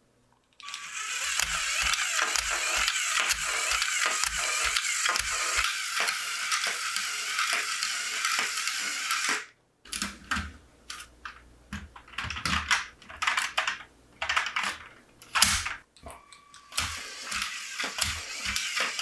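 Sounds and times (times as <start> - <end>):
toy motor gears whirring: 0.6 - 9.5, 16.6 - 19.0.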